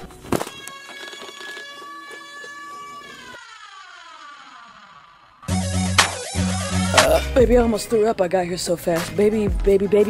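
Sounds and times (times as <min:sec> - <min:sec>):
buzzy electronic tone sliding down: 0:00.7 - 0:06.9.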